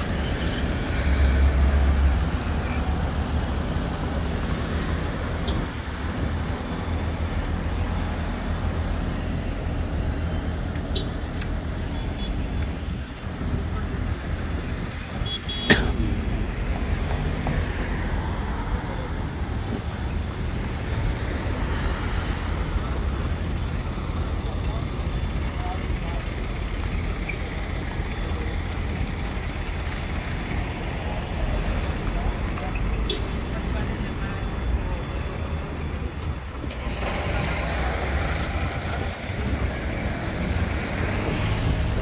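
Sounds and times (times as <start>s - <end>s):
road traffic rumble: 0.0s - 42.0s.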